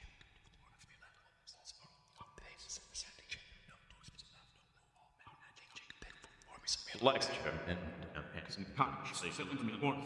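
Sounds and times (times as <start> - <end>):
processed whispering voice: 0.0 - 7.7.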